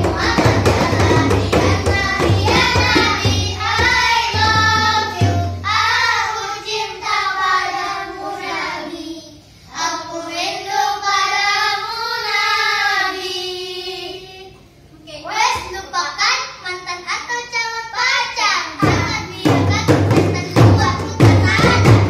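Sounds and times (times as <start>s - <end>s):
frame drums and hand drum: 0.0s - 6.2s, 18.8s - 22.0s
boys singing together: 0.0s - 14.6s, 18.8s - 22.0s.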